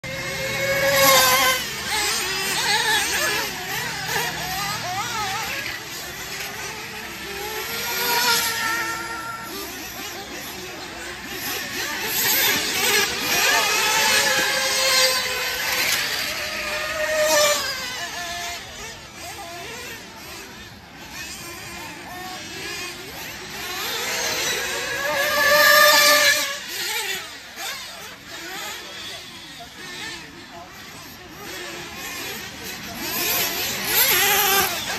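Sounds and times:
small motors buzzing high-pitched: 0.0s - 34.9s.

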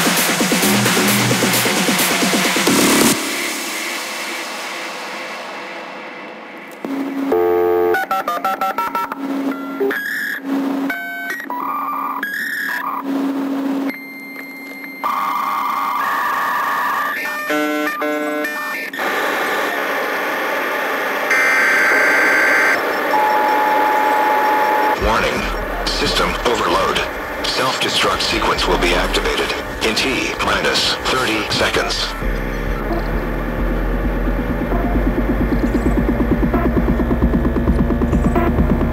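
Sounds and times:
techno music: 0.0s - 6.1s, 22.2s - 38.9s
dial-up modem tones and screeching: 13.9s - 33.1s.

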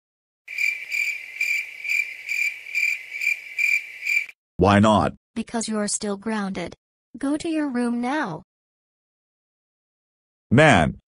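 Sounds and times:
cricket chirping: 0.5s - 4.4s.

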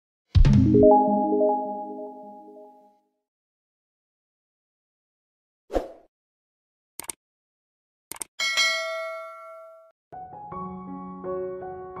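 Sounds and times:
quick clicks: 7.0s - 7.2s, 8.1s - 8.3s
bell-like ding: 8.4s - 10.0s.

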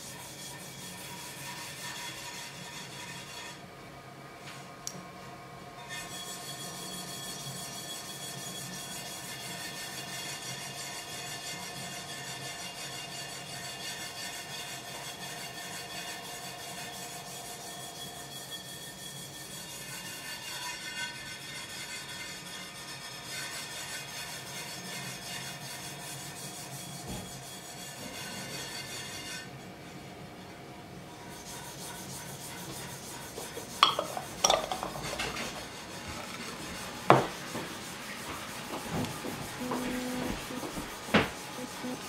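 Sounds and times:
brush rubbing glaze in cup: 31.2s - 42.0s.

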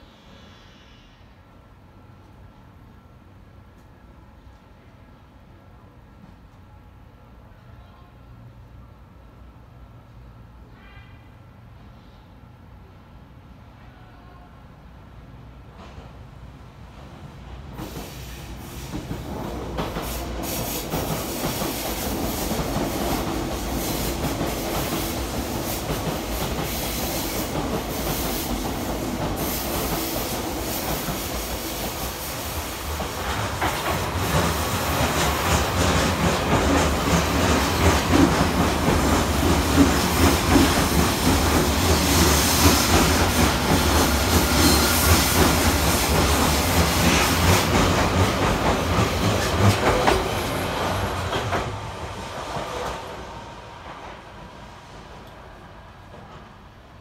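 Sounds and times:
trains passing with rumble: 0.0s - 57.0s.

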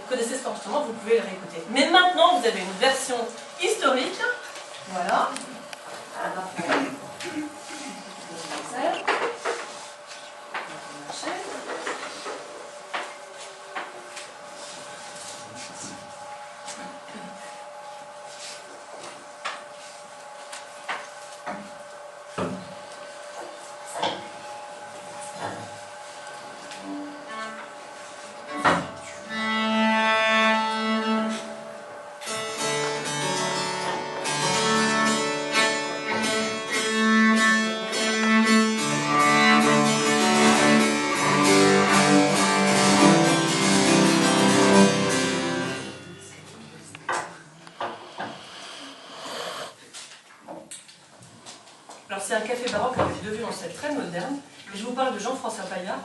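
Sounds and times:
bowed cello note: 26.8s - 49.7s
cello and harpsichord playing: 28.4s - 49.8s.

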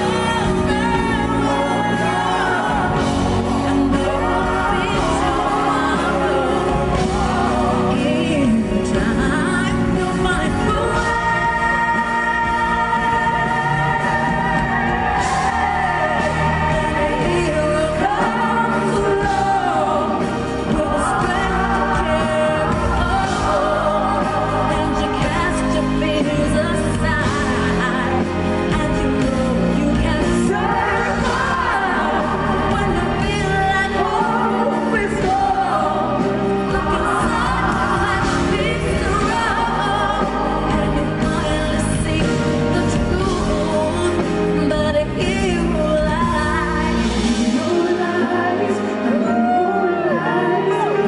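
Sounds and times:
live band with drums and bass: 0.0s - 49.8s
woman singing pop ballad: 0.0s - 51.0s.

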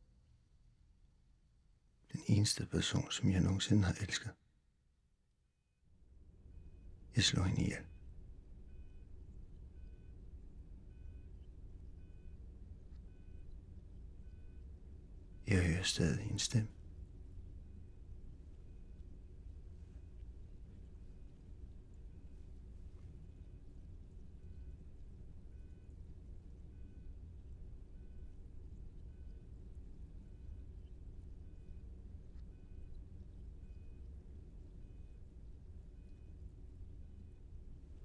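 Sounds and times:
low steady hum: 0.0s - 38.0s
patient monitor beeping: 6.5s - 16.8s, 24.3s - 26.0s, 26.6s - 29.6s, 30.2s - 33.0s, 33.6s - 34.1s, 34.7s - 37.5s
heart monitor two-tone beeps: 10.9s - 11.4s.

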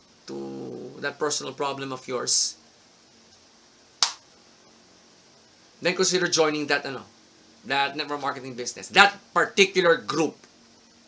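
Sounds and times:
sharp click: 4.0s - 4.3s.

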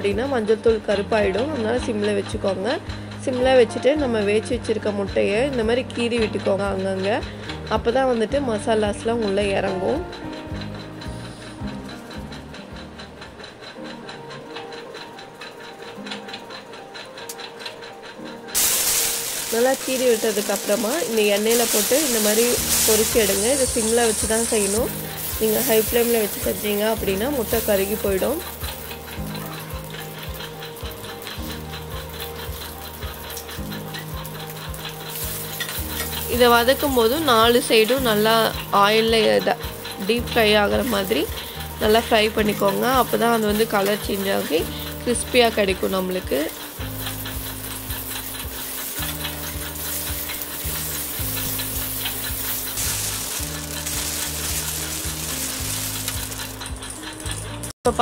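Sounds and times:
background music with steady beat: 0.0s - 58.0s
hot oil sizzling: 0.0s - 58.0s
ladle knocking and scraping pan: 18.5s - 57.6s.

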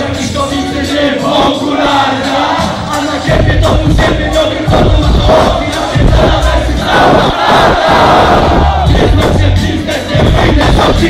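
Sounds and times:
hip-hop beat bass: 0.0s - 11.0s
crowd shouting in unison: 1.1s - 3.4s, 4.1s - 9.5s.

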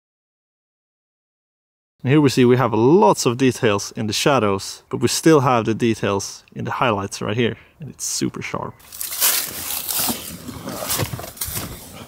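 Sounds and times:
rustling and shuffling: 8.8s - 12.0s.

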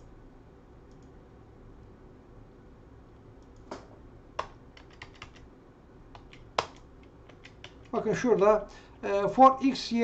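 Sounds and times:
computer keyboard typing: 4.4s - 5.5s, 6.2s - 8.5s.

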